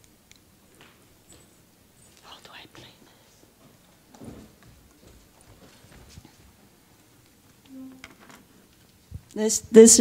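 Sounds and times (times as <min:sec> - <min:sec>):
faint whispered talk: 0:02.2 - 0:03.4.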